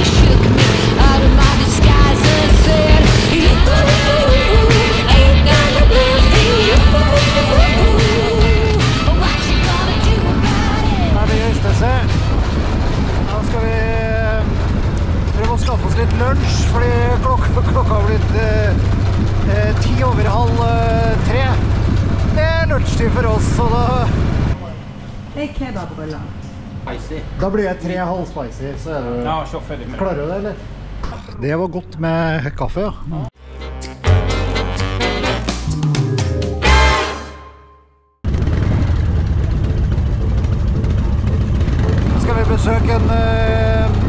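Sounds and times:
motorcycle engine rumble: 0.0s - 25.5s, 38.2s - 44.0s.

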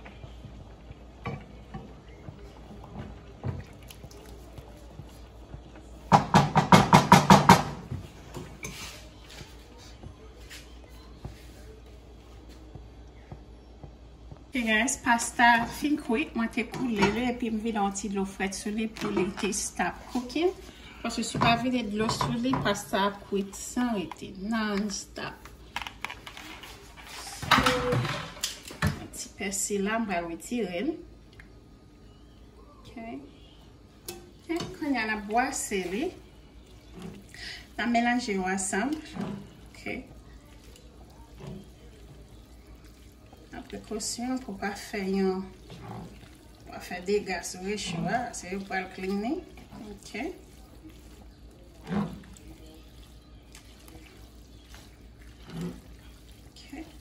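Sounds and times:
wooden spoon scraping a pan: 7.9s - 10.7s, 34.5s - 57.0s.

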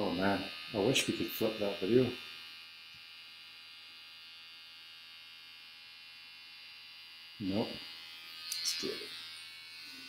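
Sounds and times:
hair clippers buzzing: 0.0s - 10.0s.

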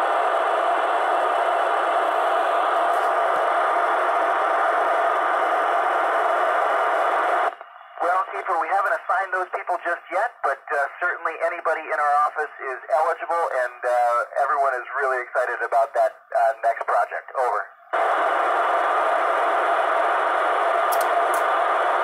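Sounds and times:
radio receiver hiss: 0.0s - 22.0s
man's voice over radio: 8.0s - 17.8s.

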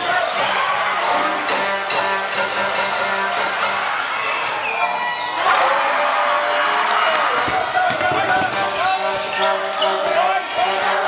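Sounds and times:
echoing voices in hall: 0.0s - 11.0s.

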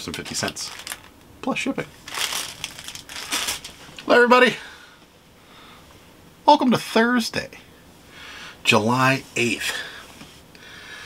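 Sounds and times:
plastic packaging crinkling: 0.0s - 1.2s, 2.0s - 4.0s.

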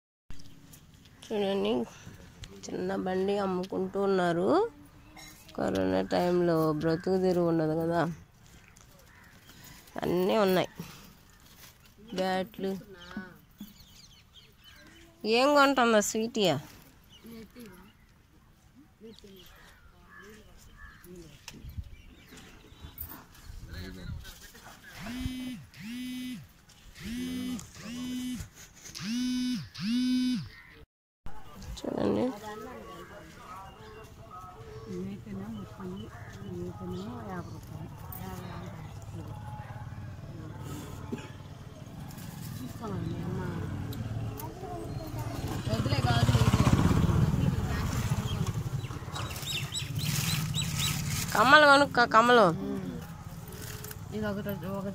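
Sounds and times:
vehicle engine rumbling: 33.4s - 54.9s.

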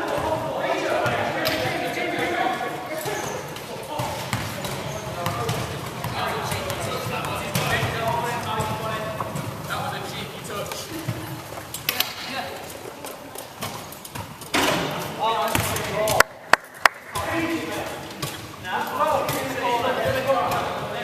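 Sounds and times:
basketball bouncing on wooden floor: 4.0s - 9.7s.

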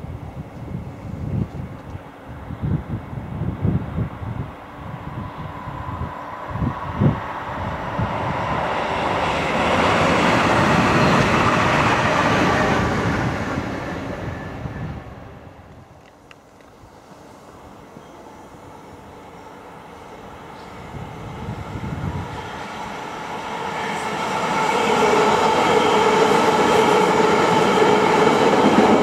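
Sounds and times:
wind buffeting microphone: 0.0s - 16.0s, 20.3s - 29.0s
electric train passing: 0.0s - 29.0s.

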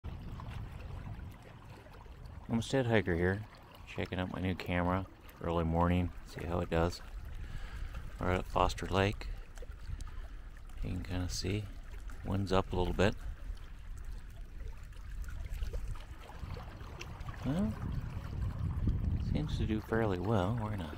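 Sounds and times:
wind rumbling on microphone: 0.0s - 2.7s, 5.9s - 20.9s
small waves lapping: 0.0s - 20.9s.

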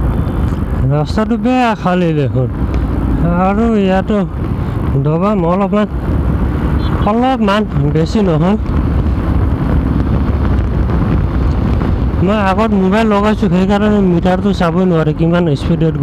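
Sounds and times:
wind rushing over microphone: 0.0s - 16.0s
motorcycle engine running: 2.5s - 15.2s.

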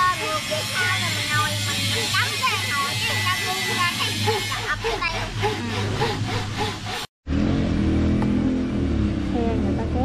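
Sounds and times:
hand saw cutting wood: 0.0s - 7.1s
engine running steadily: 0.0s - 10.0s.

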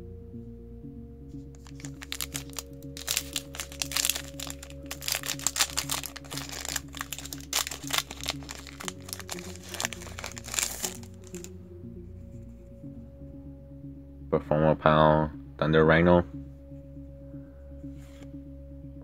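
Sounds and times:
background music: 0.0s - 19.0s
foil wrapper crinkling: 1.6s - 11.5s.

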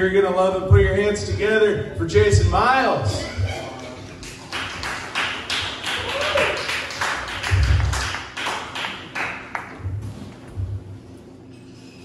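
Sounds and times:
small audience clapping: 3.6s - 9.8s.

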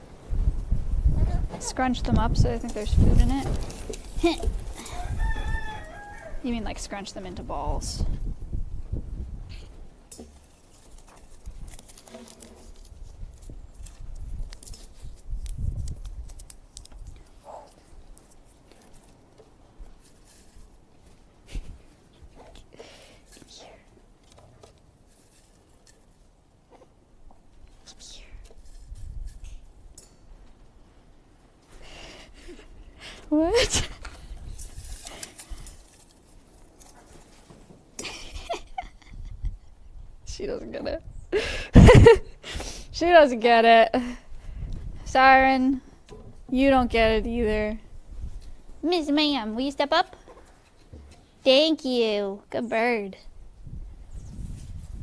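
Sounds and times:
paper strips rustling in metal bowl: 10.6s - 16.9s, 34.4s - 37.0s.

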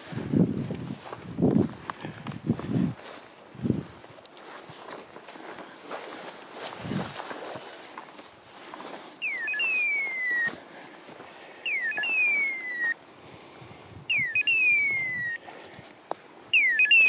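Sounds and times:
electronic beeper chirp and whistle: 9.2s - 10.6s, 11.6s - 13.0s, 14.1s - 15.4s, 16.5s - 17.0s.

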